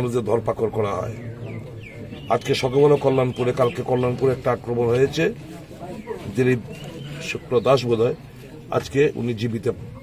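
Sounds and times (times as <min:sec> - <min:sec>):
man speaking: 0:00.0 - 0:05.4, 0:06.0 - 0:10.0.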